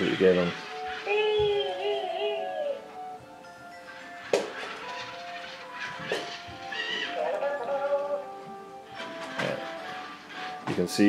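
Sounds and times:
electronic music-like tones: 0.0 - 11.0.

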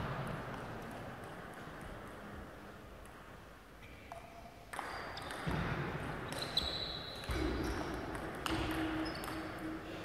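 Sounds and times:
table tennis ball hits: 4.7 - 6.6, 7.2 - 9.8.

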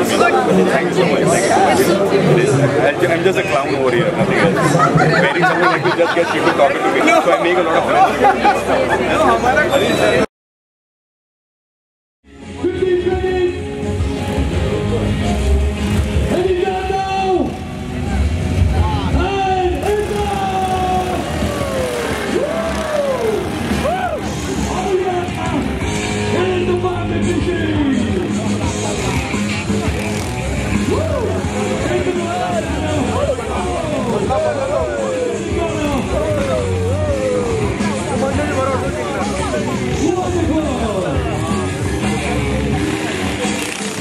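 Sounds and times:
voices: 0.0 - 10.3, 12.6 - 44.0
motorcycle engines revving: 13.3 - 44.0.

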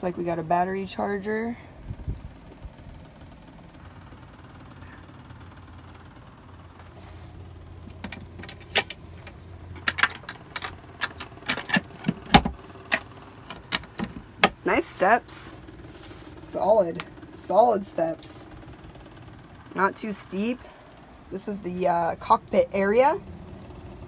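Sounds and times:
knocks and clicks: 7.9 - 14.6.

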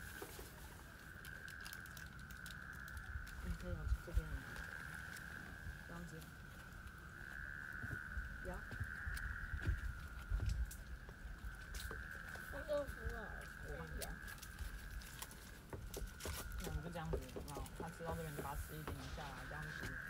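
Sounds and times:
insects droning: 0.0 - 20.0
wind on microphone: 0.0 - 20.0.

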